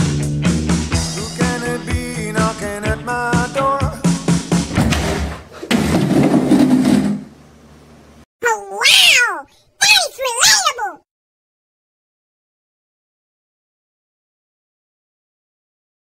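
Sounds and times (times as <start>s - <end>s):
cat meowing: 8.4s - 9.6s.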